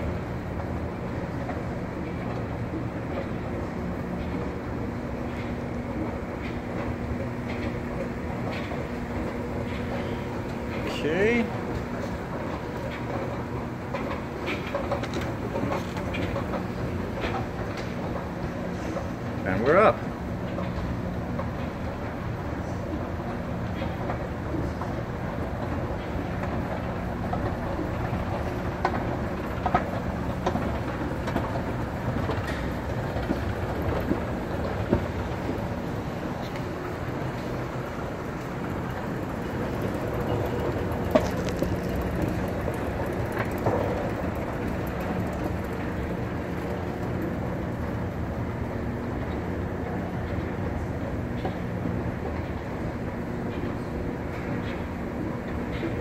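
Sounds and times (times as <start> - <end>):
escalator mechanical hum: 0.0 - 56.0.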